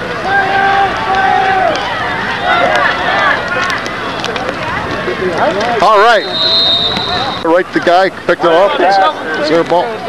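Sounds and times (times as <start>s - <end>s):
crowd voices: 0.0s - 10.0s
loud shout: 0.2s - 3.6s
referee's whistle blast: 6.0s - 7.5s.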